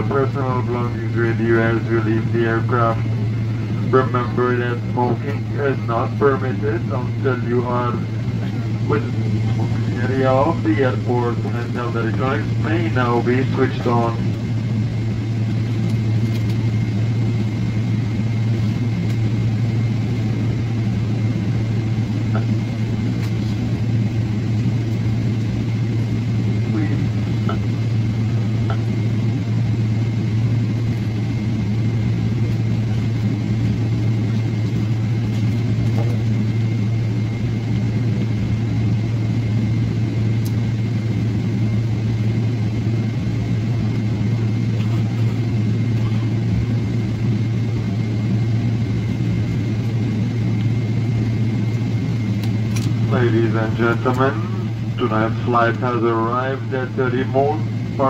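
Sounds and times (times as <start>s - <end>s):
airliner engine hum: 0.0s - 58.0s
high whine: 0.0s - 58.0s.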